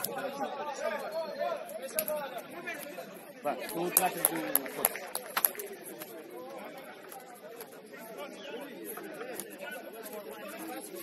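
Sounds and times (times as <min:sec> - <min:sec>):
players chatting and calling: 0:00.0 - 0:11.0.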